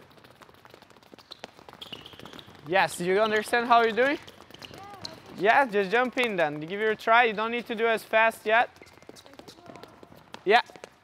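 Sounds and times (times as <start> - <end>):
quick footsteps on indoor court: 0.0 - 11.0
shoe squeak: 1.0 - 5.5, 8.7 - 11.0.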